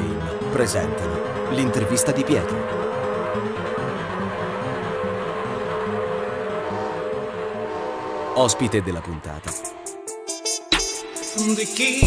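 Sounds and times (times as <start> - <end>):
jingle music: 0.0 - 5.4, 8.4 - 12.0.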